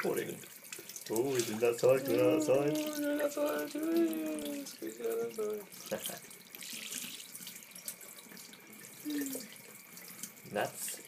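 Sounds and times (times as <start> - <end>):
tap water splashing into sink: 0.0 - 11.0.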